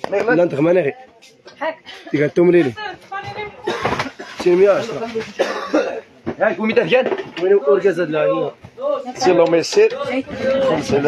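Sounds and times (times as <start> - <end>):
people talking: 2.8 - 11.0
person coughing: 3.6 - 4.4, 5.4 - 6.1.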